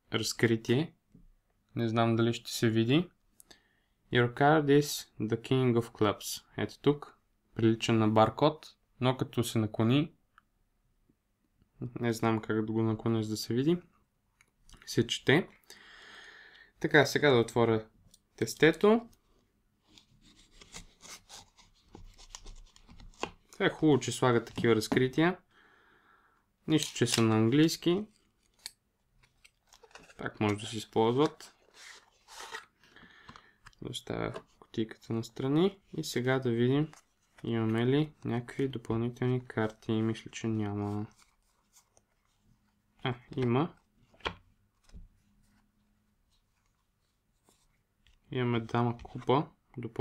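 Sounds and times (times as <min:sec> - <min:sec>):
man speaking: 0:11.8 - 0:13.9, 0:14.7 - 0:15.6, 0:16.8 - 0:19.2, 0:23.6 - 0:25.4, 0:26.6 - 0:28.2, 0:30.1 - 0:31.6, 0:33.8 - 0:41.2, 0:43.0 - 0:43.8, 0:48.3 - 0:50.0.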